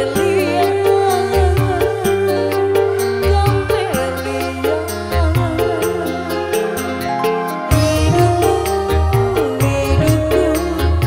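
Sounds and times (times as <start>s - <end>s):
band playing: 0.0s - 11.0s
woman singing into microphone: 0.0s - 11.0s
steady drum beat: 7.7s - 11.0s.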